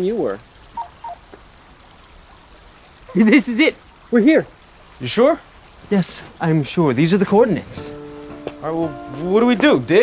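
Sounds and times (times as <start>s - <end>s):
faint outdoor background hiss: 0.0s - 10.0s.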